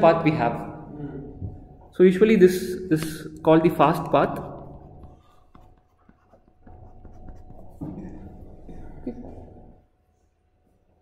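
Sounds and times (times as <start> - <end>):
stylus tapping on tablet screen: 4.0 - 7.9.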